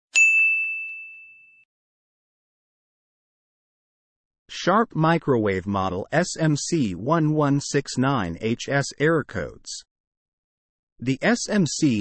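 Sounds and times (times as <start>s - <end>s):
bright bell ding: 0.1s - 1.7s.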